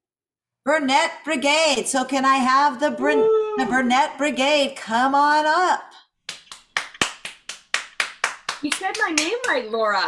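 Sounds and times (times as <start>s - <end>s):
hands clapping steadily: 6.2s - 10.0s.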